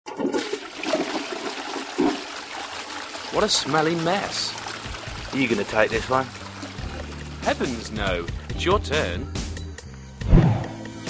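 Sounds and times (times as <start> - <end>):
toilet flushing: 0.1 - 8.6.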